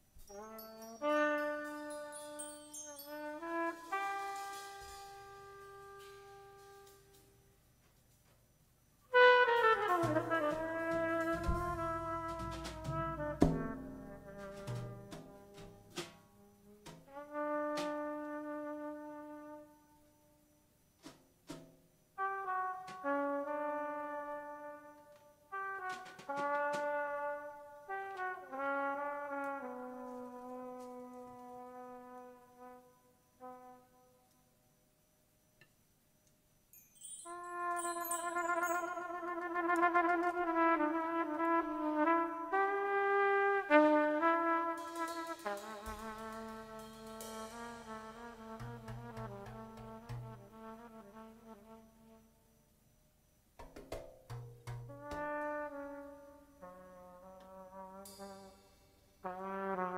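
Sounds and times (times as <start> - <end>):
trumpet melody with vibrato: 0.2 - 7.5, 9.1 - 19.9, 22.2 - 34.2, 37.0 - 52.4, 54.9 - 59.9
low instrument notes: 9.2 - 18.4, 44.5 - 51.7.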